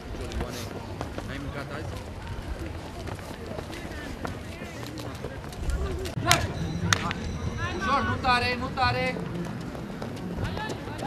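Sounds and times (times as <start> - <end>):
light footfalls on a track: 0.0 - 6.2.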